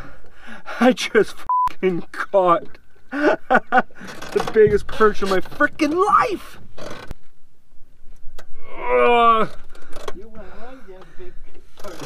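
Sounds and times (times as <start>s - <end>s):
man speaking indistinctly: 4.4s - 6.6s.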